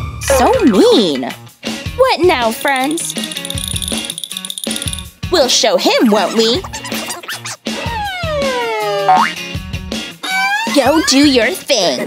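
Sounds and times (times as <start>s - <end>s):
background music: 0.0s - 12.0s
cartoon falling tone: 6.7s - 9.4s.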